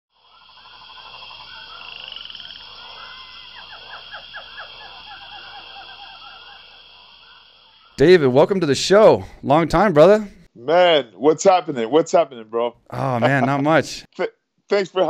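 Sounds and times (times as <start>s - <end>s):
frogs calling: 0.1s - 9.1s.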